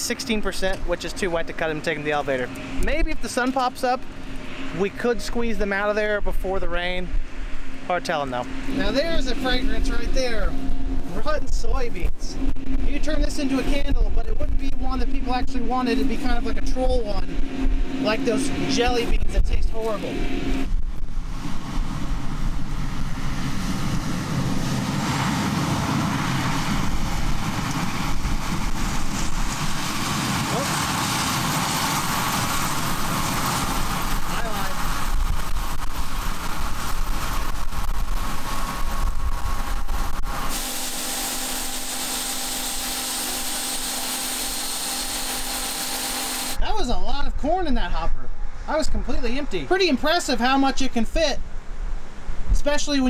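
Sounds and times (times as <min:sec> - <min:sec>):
wind buffeting microphone: 0:00.0 - 0:41.0
combine harvester running: 0:00.0 - 0:46.6.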